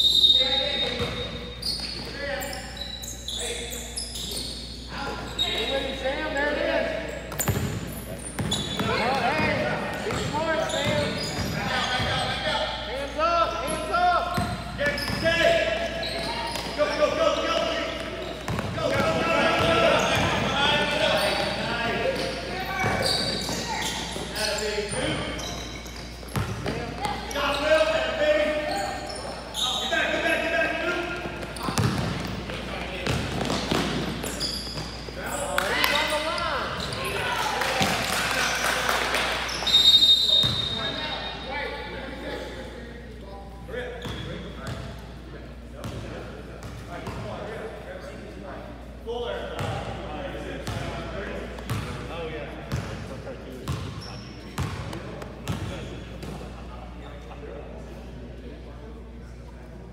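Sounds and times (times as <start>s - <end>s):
voices calling out in gym: 0.0s - 59.9s.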